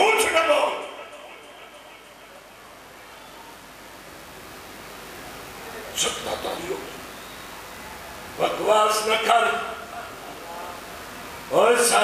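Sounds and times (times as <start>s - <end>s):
man reciting: 0.0s - 2.2s
faint steady hiss: 0.0s - 12.0s.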